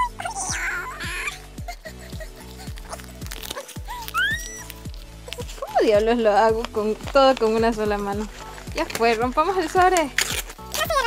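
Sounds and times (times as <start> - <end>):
kick drum beat: 0.0 - 2.9, 3.8 - 11.0.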